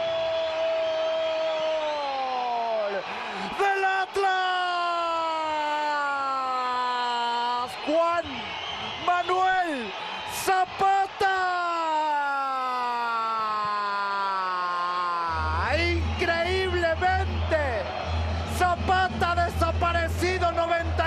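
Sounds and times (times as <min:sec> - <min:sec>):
commentator shouting: 0:02.8 - 0:08.4, 0:09.1 - 0:17.9.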